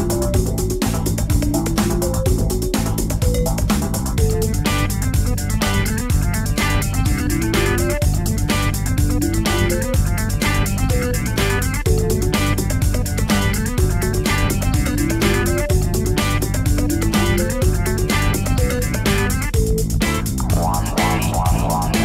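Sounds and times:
clean electric bass line: 0:00.0 - 0:22.0
steady drum beat: 0:00.0 - 0:22.0
short guitar-like notes: 0:20.4 - 0:22.0.

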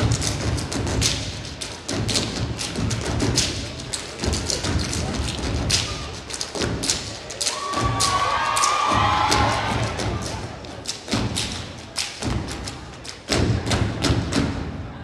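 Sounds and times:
heavy thudding beat: 0:00.0 - 0:08.3, 0:08.9 - 0:14.8
audience cheering: 0:07.4 - 0:10.4.

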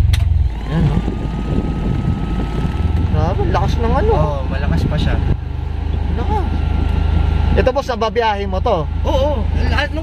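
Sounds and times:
air-conditioning blower rushing: 0:00.0 - 0:08.6
car engine idling: 0:00.0 - 0:10.0.

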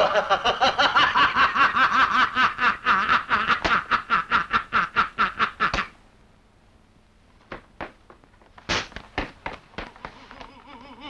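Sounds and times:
man laughing loudly: 0:00.0 - 0:05.8, 0:10.0 - 0:11.0.

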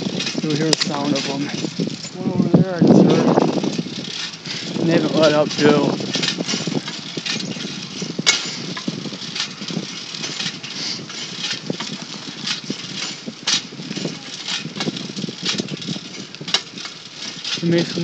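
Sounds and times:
bicycle rattling over pavement: 0:00.0 - 0:18.0
steady rushing noise: 0:00.0 - 0:18.0.

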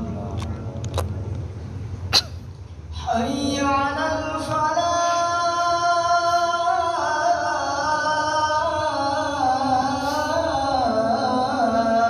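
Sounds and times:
low sound system hum: 0:00.0 - 0:12.0.

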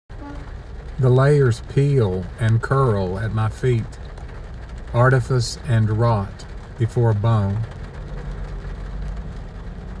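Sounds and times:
low steady rumble: 0:00.1 - 0:10.0.

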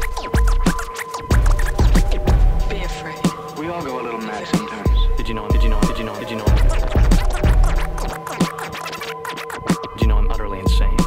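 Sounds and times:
hip-hop beat: 0:00.0 - 0:11.0
turntable scratching: 0:00.0 - 0:11.0.

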